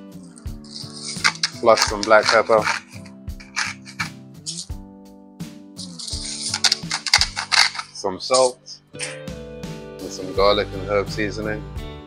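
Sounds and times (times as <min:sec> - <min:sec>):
background music with bass line: 0:00.0 - 0:12.0
pepper grinder rasping: 0:00.3 - 0:04.8, 0:05.8 - 0:08.5.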